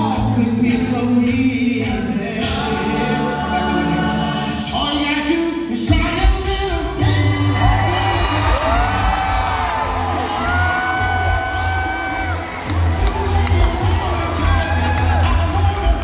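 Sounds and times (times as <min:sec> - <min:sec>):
male a cappella group singing: 0:00.0 - 0:16.0
audience whooping and cheering: 0:07.0 - 0:16.0.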